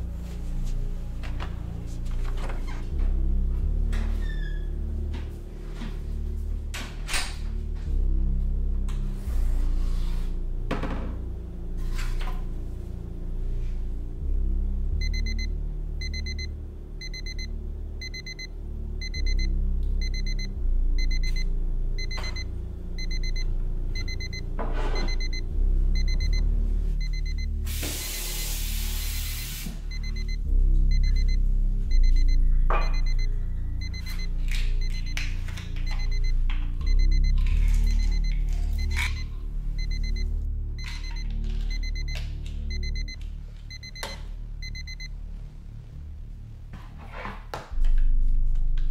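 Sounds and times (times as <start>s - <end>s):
background music: 0.0s - 48.9s
digital watch alarm beeping: 15.0s - 24.4s, 25.0s - 45.2s.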